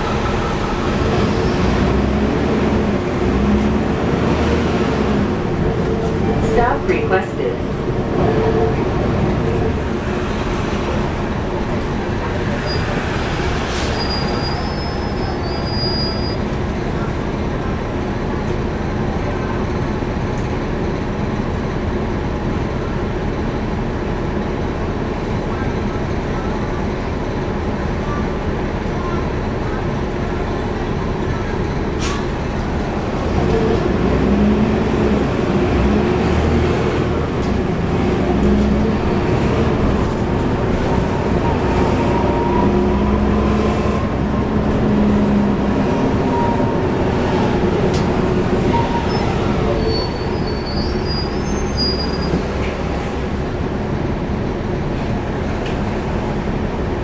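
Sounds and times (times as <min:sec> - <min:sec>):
bus diesel engine: 0:00.0 - 0:57.0.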